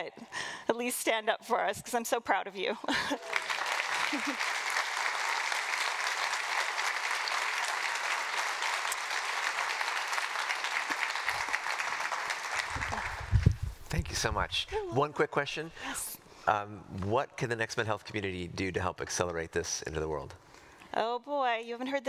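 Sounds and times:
audience applauding: 3.1s - 13.6s.

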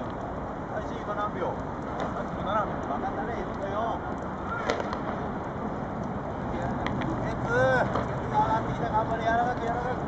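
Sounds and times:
baseball smacking into hand: 4.6s - 5.2s.

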